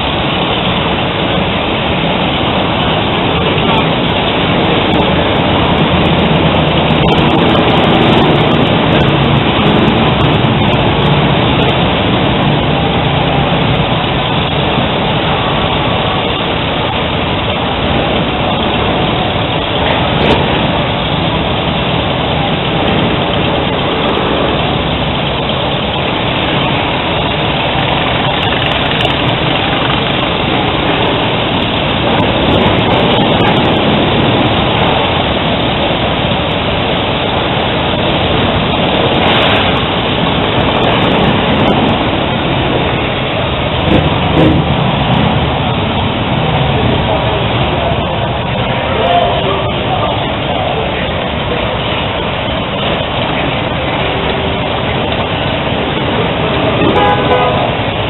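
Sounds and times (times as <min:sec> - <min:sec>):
motorcycle engines running: 0:00.0 - 0:58.0.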